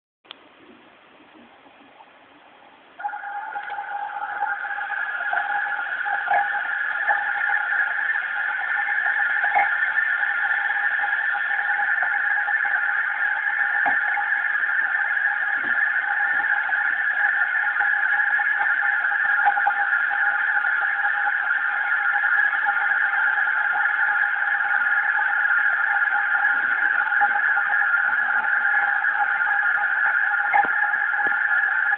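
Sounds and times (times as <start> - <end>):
high-pitched drone: 3.0 - 31.9.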